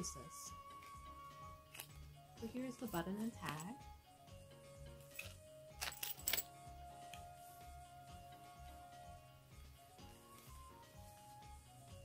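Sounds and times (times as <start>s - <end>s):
background music with low beat: 0.0s - 12.0s
small metallic clinks: 5.0s - 6.5s.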